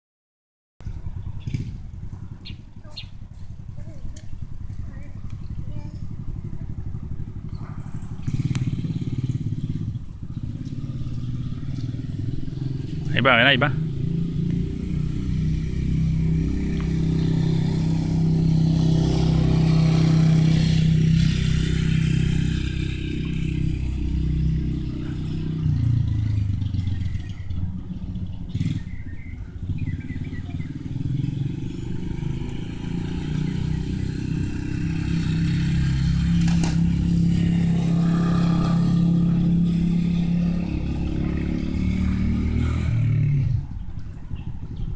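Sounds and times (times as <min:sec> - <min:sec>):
motorbike engine running: 0:00.8 - 0:44.9.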